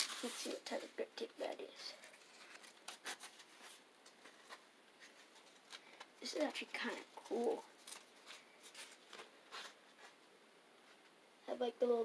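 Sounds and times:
grip tape rustling: 0.0 - 10.2.

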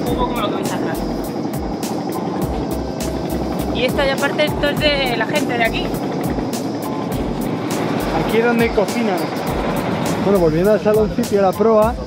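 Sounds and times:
background music with a beat: 0.0 - 12.0
boat running noise: 0.0 - 12.0.

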